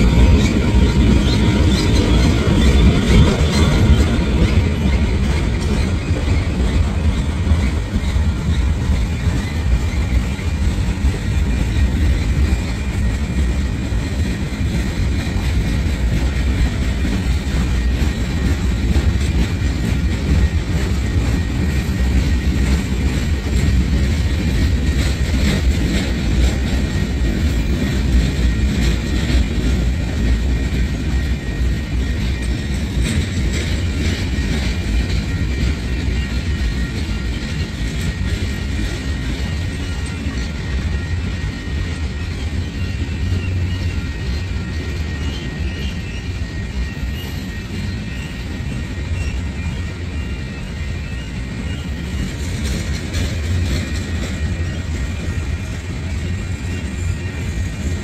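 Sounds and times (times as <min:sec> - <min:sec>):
steel wheels rumbling on rails: 0:00.0 - 0:58.0.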